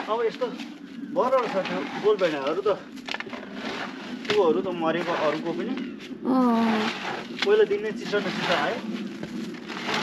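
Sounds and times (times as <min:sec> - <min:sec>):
person speaking: 0:06.3 - 0:06.9.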